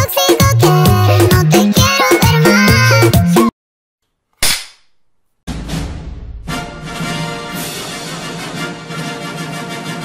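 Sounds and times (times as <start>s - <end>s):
music: 0.0s - 3.5s, 5.5s - 10.0s.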